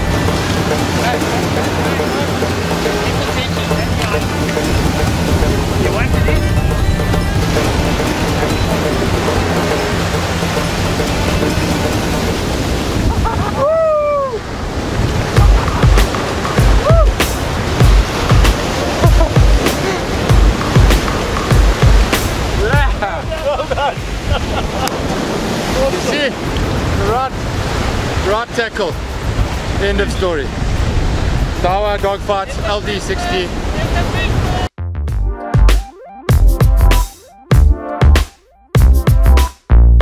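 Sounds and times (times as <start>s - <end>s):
background music with low beat: 0.0s - 12.8s, 15.3s - 24.2s, 34.8s - 40.0s
surf breaking on beach: 0.0s - 34.7s
wind: 0.0s - 34.8s.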